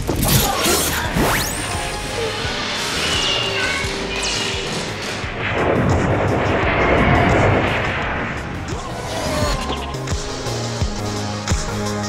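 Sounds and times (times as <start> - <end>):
loud rushing engine noise: 1.0 - 10.7.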